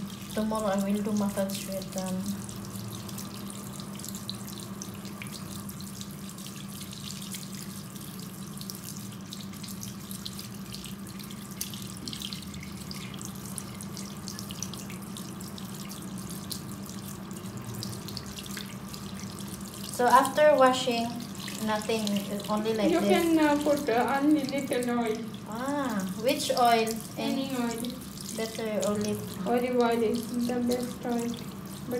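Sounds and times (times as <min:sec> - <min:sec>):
tap water running into basin: 0:00.0 - 0:31.9.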